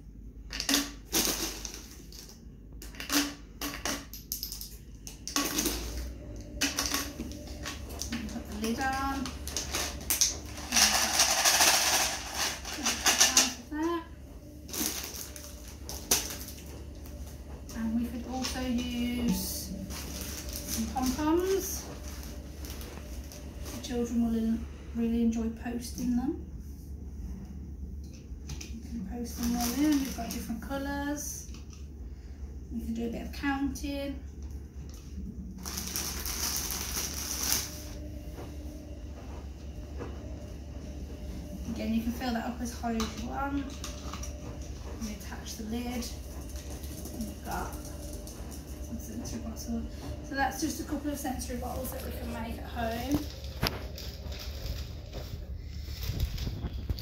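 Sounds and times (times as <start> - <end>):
plastic bag crinkling: 1.1 - 2.5, 5.3 - 13.8, 14.6 - 17.2, 18.2 - 23.9, 29.3 - 30.7, 35.6 - 38.0, 45.9 - 48.9, 51.4 - 57.0
grains rattling in plastic bottle: 6.6 - 13.6, 35.6 - 37.7.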